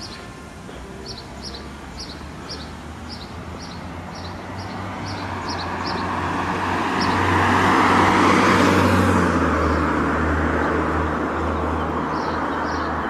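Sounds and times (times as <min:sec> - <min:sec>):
small birds chirping: 0:00.0 - 0:07.3
car passing by: 0:01.0 - 0:13.0.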